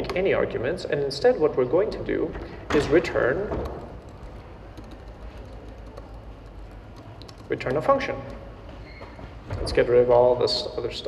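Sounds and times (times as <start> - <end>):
keyboard keys clicking: 2.8 - 8.5.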